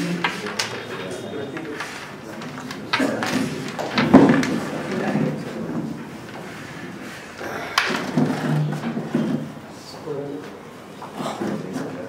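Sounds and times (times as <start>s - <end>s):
low background voices: 0.0s - 12.0s.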